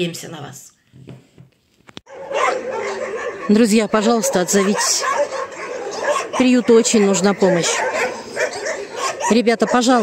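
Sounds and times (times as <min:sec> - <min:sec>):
dogs barking and whining: 0:02.1 - 0:10.0.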